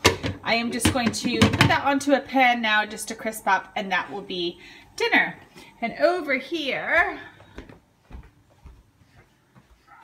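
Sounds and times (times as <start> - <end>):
soft footsteps on carpet: 6.9 - 10.0.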